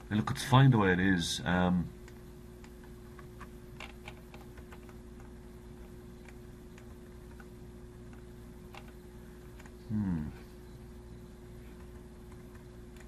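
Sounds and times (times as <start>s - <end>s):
low electrical hum: 0.0s - 13.0s
computer mouse clicks: 2.0s - 9.8s.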